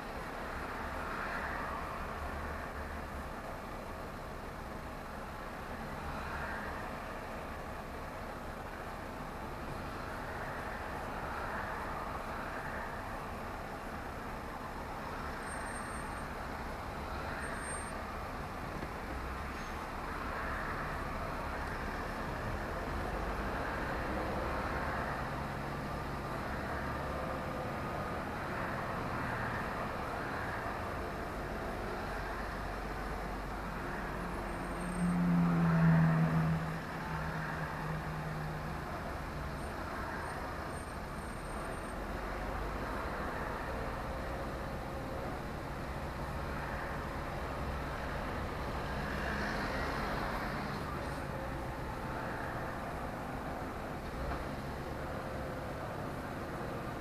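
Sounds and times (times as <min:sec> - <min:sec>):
lorry engine and road noise: 0:00.0 - 0:57.0.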